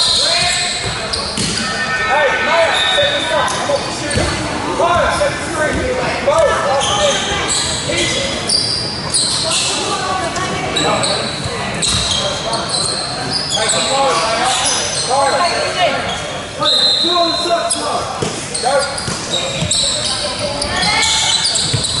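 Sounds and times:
sneakers squeaking: 0:00.0 - 0:05.2, 0:06.4 - 0:22.0
players calling out: 0:00.1 - 0:09.8.

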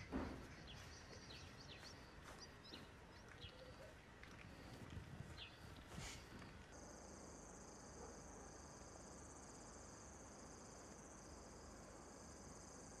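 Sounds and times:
lower pulsing cricket chirp: 0:06.7 - 0:13.0.

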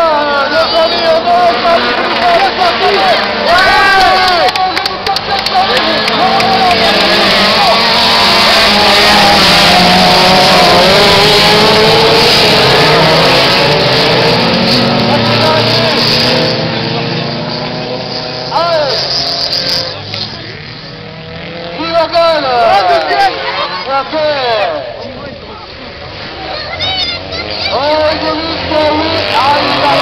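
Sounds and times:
race car engines racing past: 0:00.0 - 0:30.0.

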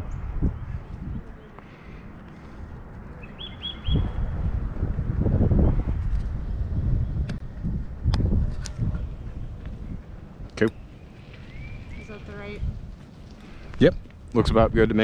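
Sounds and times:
wind rumbling on microphone: 0:00.0 - 0:15.0
small bird chirping: 0:03.2 - 0:04.1.

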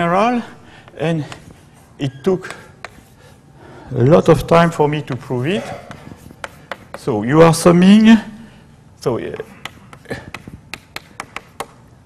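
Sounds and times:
chalk tapping on a chalkboard: 0:00.9 - 0:03.2, 0:05.0 - 0:07.2, 0:09.4 - 0:11.8.

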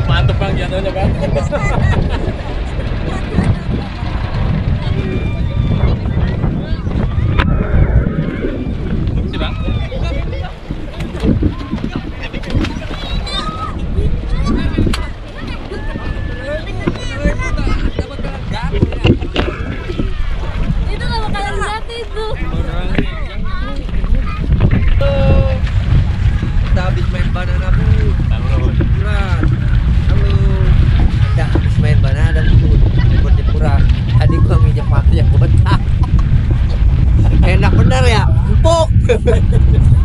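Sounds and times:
people talking: 0:00.0 - 0:25.7, 0:26.6 - 0:40.0
water splashing: 0:00.0 - 0:40.0
wind rumble on microphone: 0:00.0 - 0:40.0.

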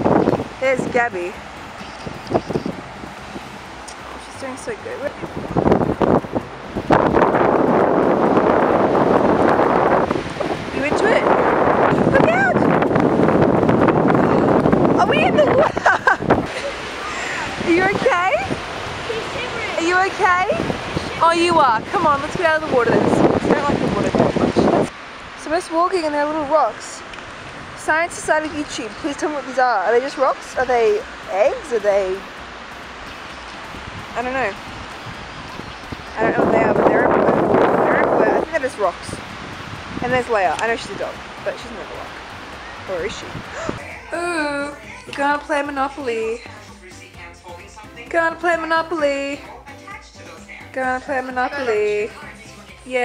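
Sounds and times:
wind buffeting microphone: 0:00.0 - 0:44.6.

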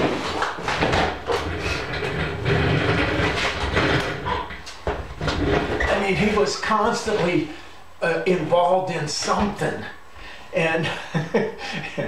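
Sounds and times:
chair knocking and scraping: 0:00.0 - 0:06.4.

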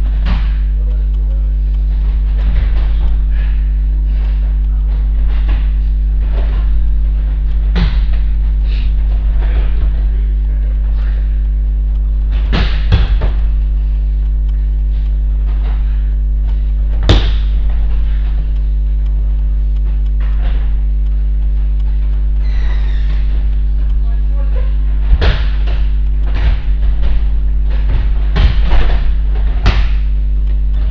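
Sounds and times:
low electrical hum: 0:00.0 - 0:30.9
bodies thudding on mats: 0:01.9 - 0:11.4, 0:12.2 - 0:14.1, 0:14.8 - 0:18.6, 0:19.5 - 0:22.1, 0:24.7 - 0:30.9.

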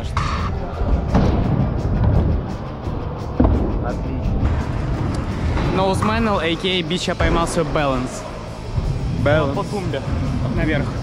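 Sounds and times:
sharp knock: 0:00.0 - 0:01.5
background music: 0:00.0 - 0:11.0.

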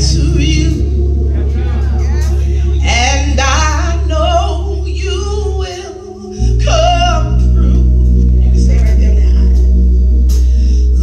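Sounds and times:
sustained instrumental chords: 0:00.0 - 0:11.0
woman singing gospel: 0:00.0 - 0:11.0.

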